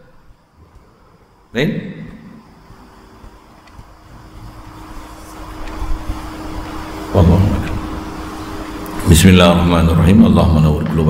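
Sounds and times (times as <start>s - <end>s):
faint steady hum: 0.0s - 11.0s
low rumbling noise: 0.0s - 11.0s.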